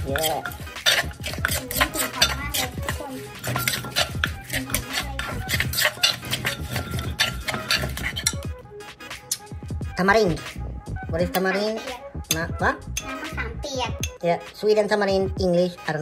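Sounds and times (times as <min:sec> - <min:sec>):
pestle knocking in a mortar: 0:00.0 - 0:08.5
spoon scraping and clinking bowl: 0:00.0 - 0:08.5
background music: 0:00.0 - 0:16.0.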